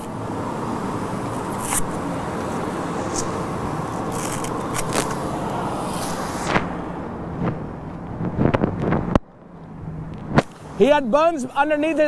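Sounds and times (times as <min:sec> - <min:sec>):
cast rasping and tearing: 0:01.5 - 0:02.0, 0:03.1 - 0:05.3.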